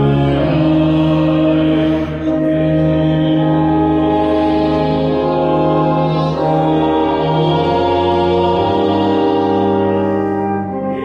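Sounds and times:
church organ chords: 0.0s - 11.0s.

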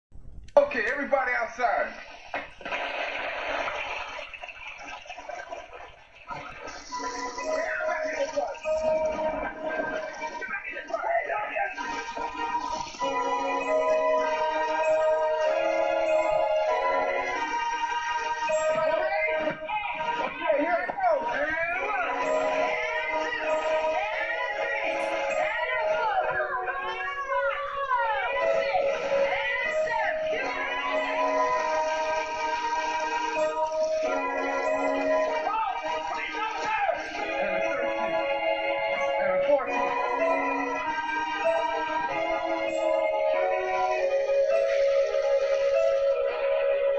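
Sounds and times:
heavy rain through tv speaker: 1.9s - 11.0s
film music with held note: 5.8s - 46.9s.

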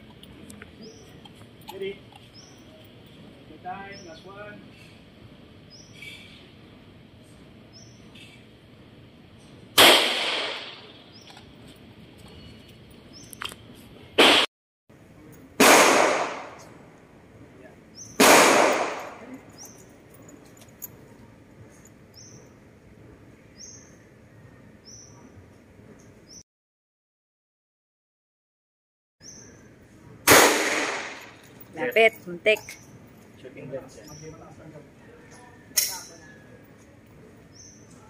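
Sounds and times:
handgun shots with echo: 9.8s - 10.9s, 15.6s - 16.6s, 18.2s - 19.3s, 30.3s - 31.4s.

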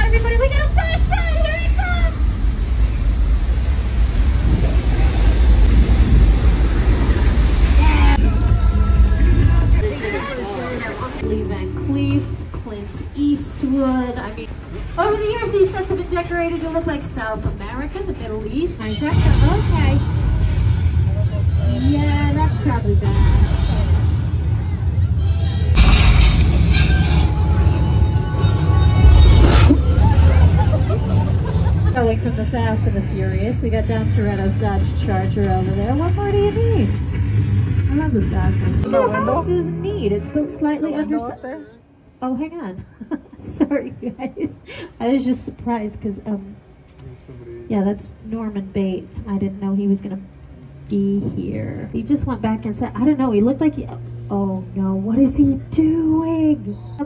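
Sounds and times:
voices: 0.0s - 2.6s, 7.0s - 24.0s, 37.8s - 57.0s
water rushing with deep rumble: 0.0s - 38.9s
music: 8.2s - 10.0s, 11.2s - 13.0s, 32.1s - 40.9s.

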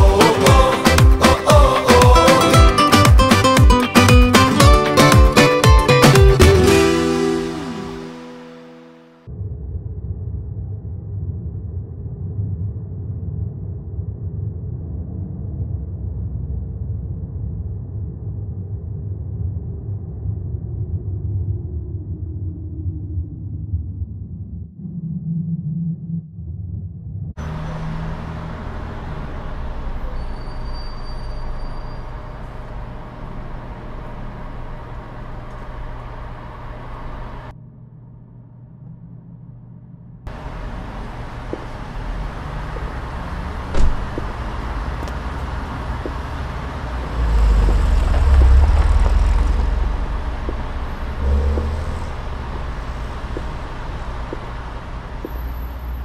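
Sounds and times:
car engine and road rumble: 27.4s - 37.5s, 40.3s - 56.0s
sharp knock: 43.7s - 44.3s.

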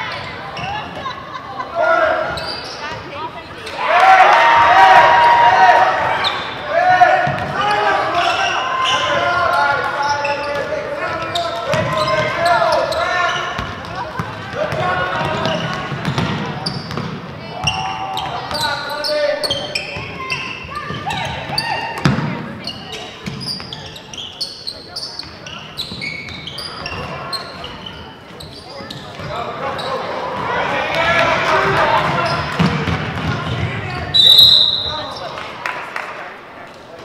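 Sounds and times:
sneakers squeaking: 0.0s - 3.9s, 5.9s - 35.4s
spectators' voices: 0.0s - 37.0s
referee's whistle: 34.1s - 35.2s.

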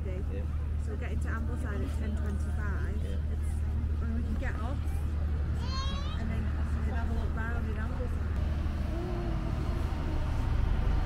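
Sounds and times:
voices of passers-by: 0.0s - 11.0s
steady low rumble: 6.7s - 11.0s.

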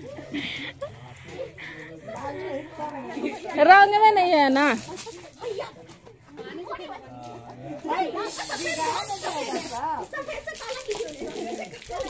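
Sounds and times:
people's voices: 0.0s - 12.0s
spray can hissing: 8.2s - 9.9s.

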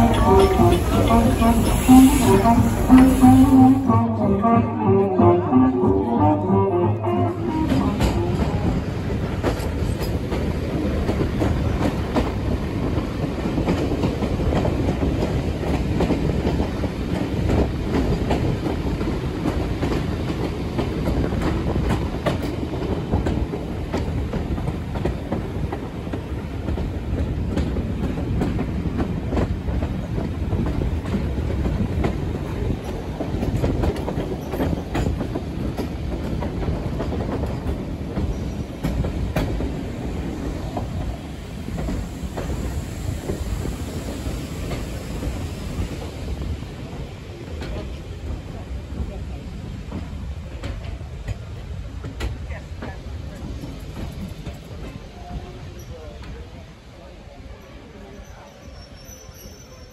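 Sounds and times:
train wheels rumbling: 0.0s - 59.9s.

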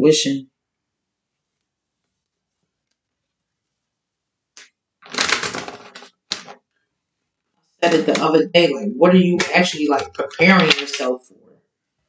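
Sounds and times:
cards being shuffled: 5.0s - 6.6s, 9.4s - 11.1s.

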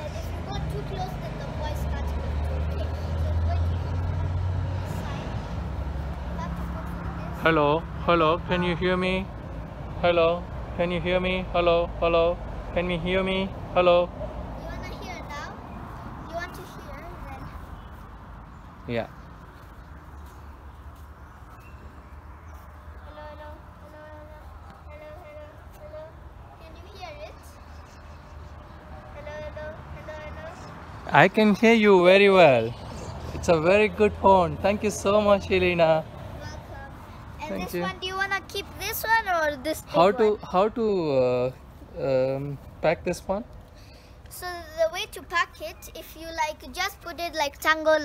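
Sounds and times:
passing vehicle engine rumble: 0.0s - 48.0s.

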